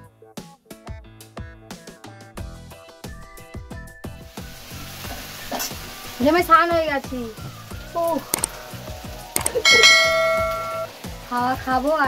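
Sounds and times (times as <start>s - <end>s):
metal bell ringing: 9.4s - 10.9s.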